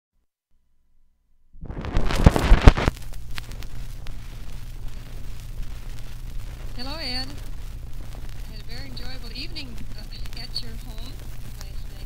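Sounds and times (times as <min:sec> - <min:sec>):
record crackles and pops: 0:01.5 - 0:12.0
low hum: 0:01.6 - 0:12.0
steady hiss: 0:01.6 - 0:12.0.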